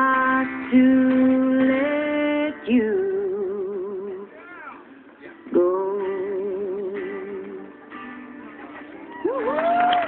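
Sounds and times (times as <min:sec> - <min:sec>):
woman singing with vibrato: 0:00.0 - 0:04.3, 0:05.4 - 0:07.8
soft musical accompaniment: 0:00.0 - 0:10.0.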